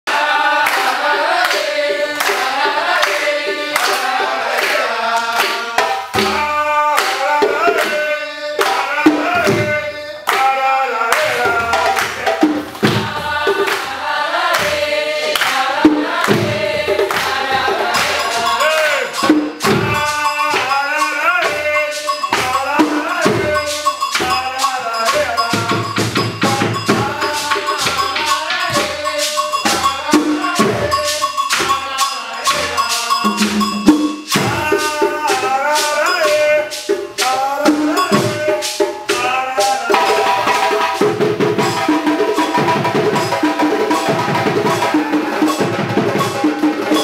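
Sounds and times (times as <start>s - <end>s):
people singing: 0.0s - 47.0s
hand drums: 0.1s - 47.0s.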